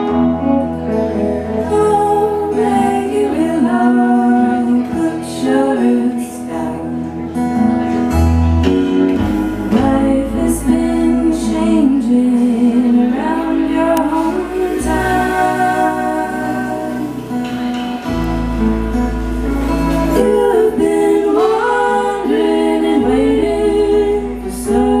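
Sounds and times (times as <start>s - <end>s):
acoustic and electric guitar: 0.0s - 25.0s
women singing slow melody: 1.4s - 7.4s, 9.5s - 18.5s, 19.6s - 25.0s.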